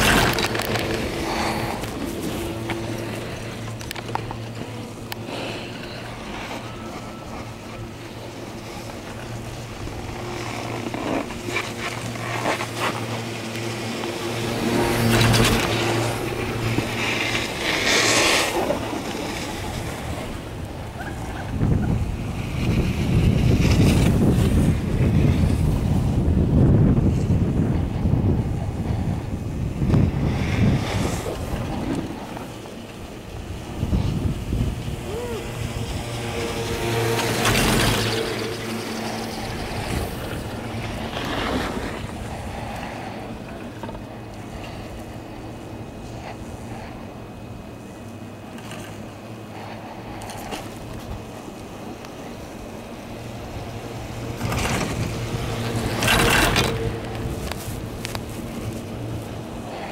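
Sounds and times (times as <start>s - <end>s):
low hum of haul rope: 0.0s - 59.9s
wind rushing over microphone: 0.0s - 59.9s.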